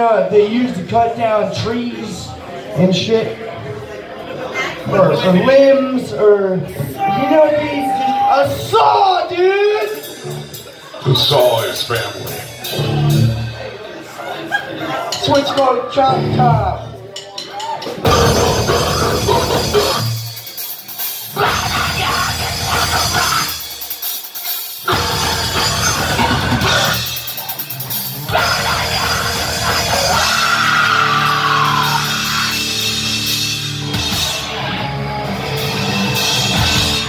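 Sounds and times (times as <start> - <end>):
heavy metal band playing: 6.8 - 13.8, 15.1 - 16.9, 18.0 - 37.0
high sliding guitar note: 7.0 - 8.7.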